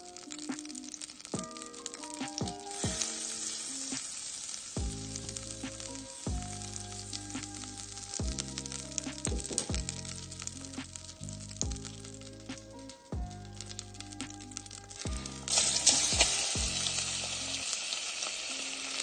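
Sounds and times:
butter sizzling in a saucepan: 0.0 - 19.0
background music with bass beat: 4.8 - 17.6.

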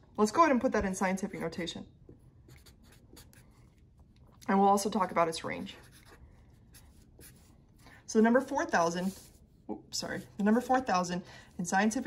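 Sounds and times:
pen scratching on paper: 2.5 - 3.8, 5.5 - 7.6.

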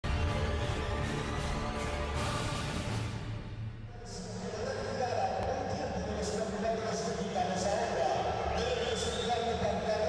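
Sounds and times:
wrestling venue background noise: 0.0 - 10.0.

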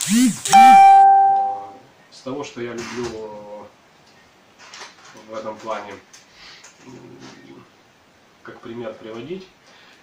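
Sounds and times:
clear ringing chime: 0.6 - 1.8.

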